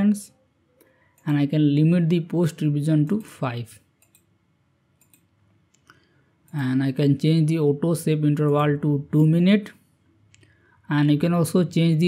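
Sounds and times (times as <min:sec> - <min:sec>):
faint computer mouse clicks: 0:04.0 - 0:04.3, 0:05.0 - 0:06.1.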